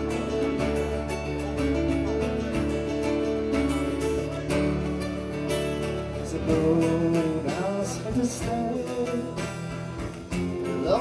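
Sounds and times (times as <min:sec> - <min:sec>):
acoustic guitars strumming: 0:00.0 - 0:11.0.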